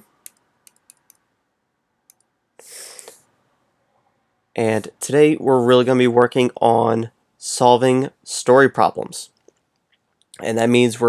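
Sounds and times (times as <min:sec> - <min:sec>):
computer mouse clicks: 0:00.0 - 0:01.2
short breath: 0:02.6 - 0:03.3.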